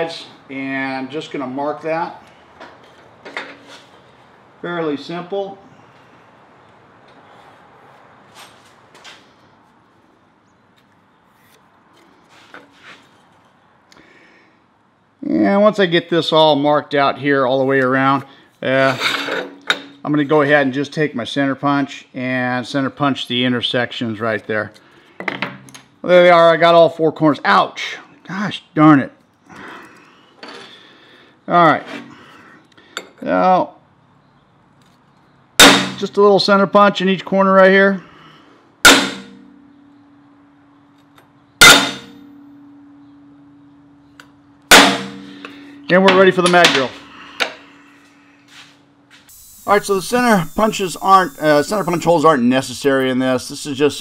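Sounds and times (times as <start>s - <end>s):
hammer striking metal punch: 35.6s - 36.1s, 38.8s - 39.6s, 41.6s - 42.3s, 44.7s - 47.6s.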